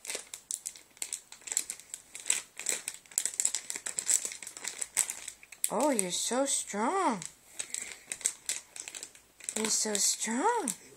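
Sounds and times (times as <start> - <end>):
hand patting plastic packet: 0.0 - 10.9
plastic packet crinkling: 0.0 - 10.9.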